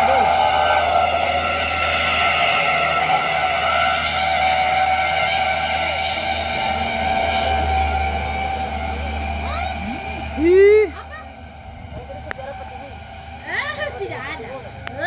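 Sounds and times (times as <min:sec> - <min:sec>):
motor high drone: 0:00.0 - 0:15.0.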